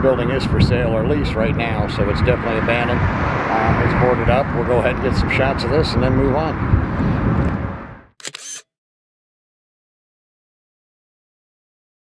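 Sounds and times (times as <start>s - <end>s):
camera shutter double click: 8.2s - 8.7s.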